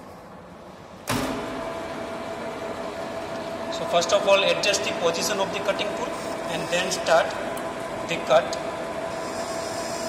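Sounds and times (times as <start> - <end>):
lathe motor humming and whining: 1.3 - 10.0.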